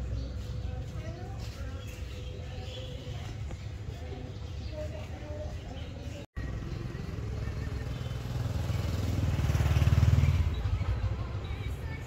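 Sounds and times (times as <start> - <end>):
passing vehicle engine rumble: 5.6 - 12.0.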